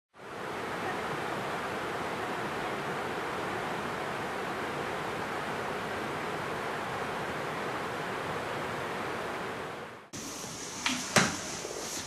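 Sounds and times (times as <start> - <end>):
waterfall rushing: 0.2 - 9.8.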